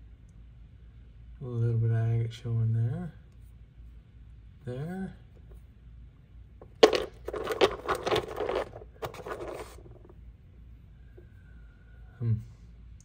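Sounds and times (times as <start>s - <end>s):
stones clattering in plastic tub: 6.6s - 10.1s.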